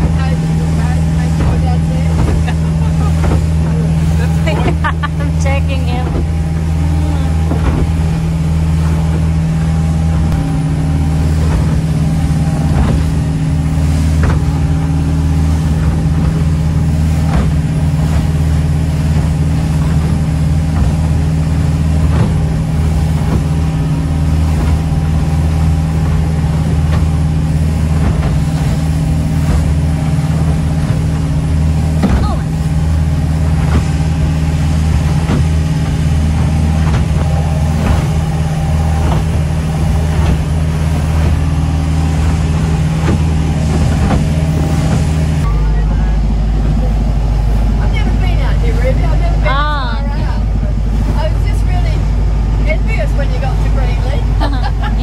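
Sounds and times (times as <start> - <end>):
boat engine droning: 0.0 - 55.0
hull slamming into waves: 0.0 - 55.0
water rushing along hull: 0.0 - 55.0.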